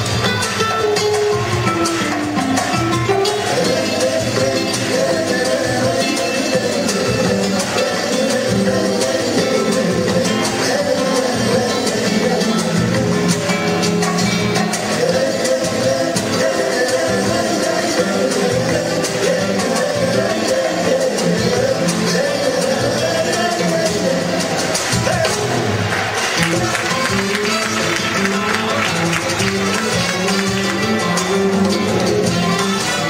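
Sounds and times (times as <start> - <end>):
guitars: 0.0 - 33.0
live band playing: 0.0 - 33.0
people singing into microphones: 1.4 - 33.0
trumpets: 25.1 - 33.0.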